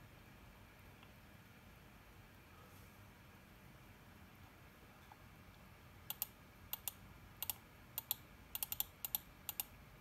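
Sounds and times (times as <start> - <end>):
computer keyboard typing: 6.1 - 9.7.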